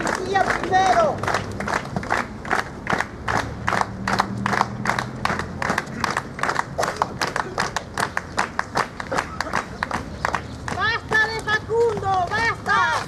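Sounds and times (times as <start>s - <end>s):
crowd clapping in rhythm: 0.0s - 13.0s.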